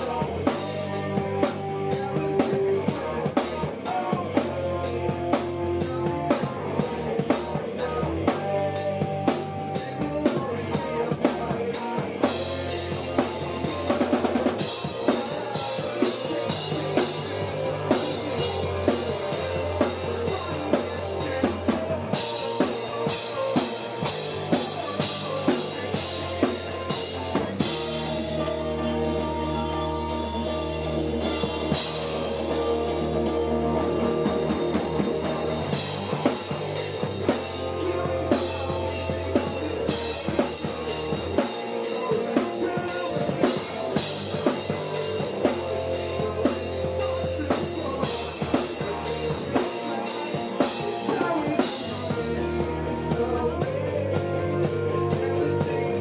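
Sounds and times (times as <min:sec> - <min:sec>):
bass guitar: 0:00.0 - 0:56.0
drum kit: 0:00.0 - 0:56.0
electric guitars: 0:00.0 - 0:56.0
live band playing: 0:00.0 - 0:56.0.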